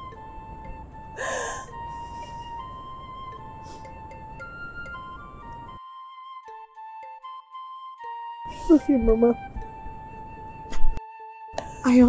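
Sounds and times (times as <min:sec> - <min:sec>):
soft flute music: 0:00.0 - 0:12.0
woman gasping breath: 0:01.2 - 0:02.7.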